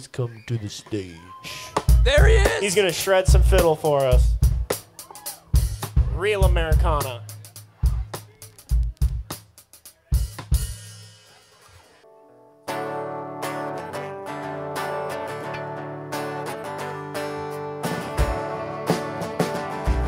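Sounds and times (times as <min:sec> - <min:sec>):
drum kit beats: 0:01.5 - 0:12.0, 0:17.7 - 0:20.0
live band playing: 0:01.5 - 0:12.0, 0:12.7 - 0:20.0.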